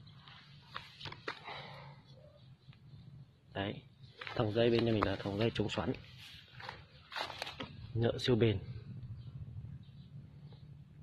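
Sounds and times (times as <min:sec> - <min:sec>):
dry leaves and twigs rustling: 0:04.1 - 0:07.9
twigs crackling: 0:04.1 - 0:07.9.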